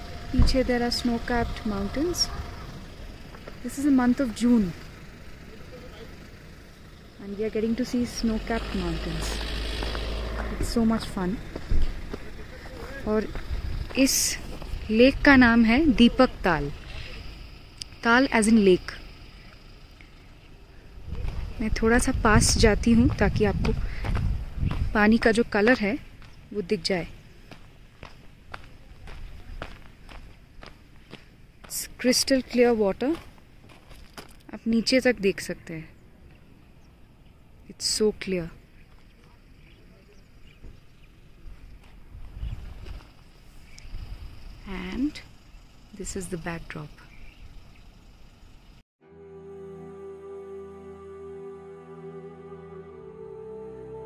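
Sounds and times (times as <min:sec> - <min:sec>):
low outdoor background rumble: 0:00.0 - 0:54.0
footsteps on gravel: 0:09.8 - 0:14.9, 0:23.0 - 0:26.8, 0:27.4 - 0:34.4.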